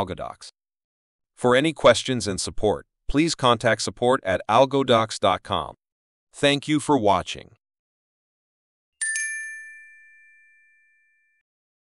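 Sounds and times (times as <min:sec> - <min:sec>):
bright ringing chime: 0:09.0 - 0:11.4.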